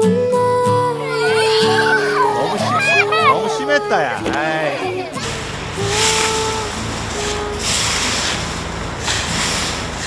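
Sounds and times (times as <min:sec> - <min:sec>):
broom sweeping dry leaves: 0:05.2 - 0:10.0.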